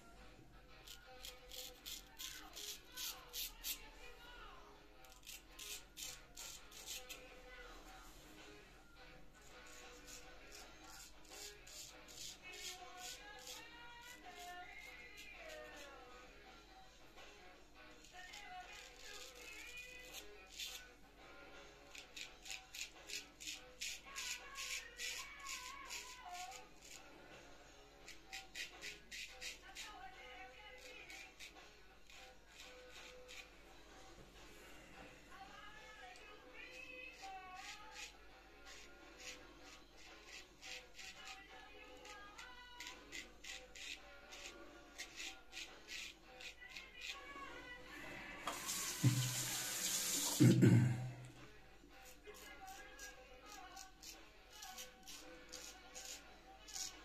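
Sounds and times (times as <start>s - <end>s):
faint background music: 0.0s - 57.0s
razor scraping stubble: 0.7s - 4.4s, 5.0s - 16.5s, 17.2s - 27.1s, 27.9s - 34.5s, 35.6s - 51.3s, 51.9s - 57.0s.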